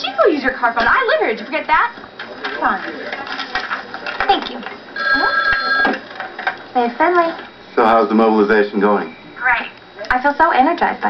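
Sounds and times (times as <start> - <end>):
electronic telephone ring: 5.0 - 6.1.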